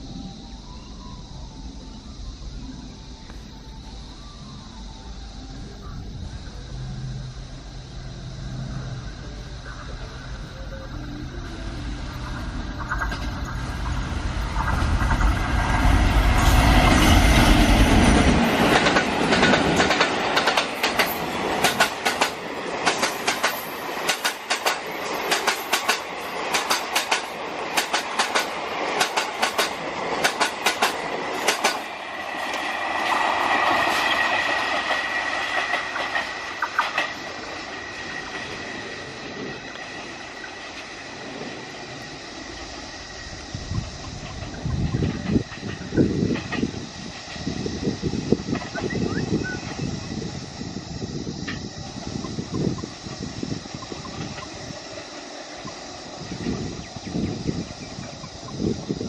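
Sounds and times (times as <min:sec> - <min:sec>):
diesel locomotive engine rumble: 0:00.0 - 0:59.0
train wheels clicking over rail joints: 0:12.3 - 0:48.9.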